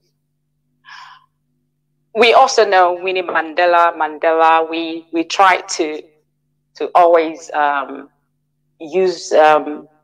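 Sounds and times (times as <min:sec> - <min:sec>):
woman breathing in: 0:00.8 - 0:01.4.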